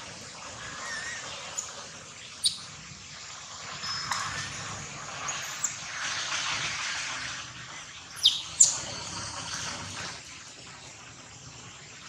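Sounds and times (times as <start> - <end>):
bird chirps sliding down: 2.4 - 2.7, 3.8 - 5.8, 8.2 - 9.1.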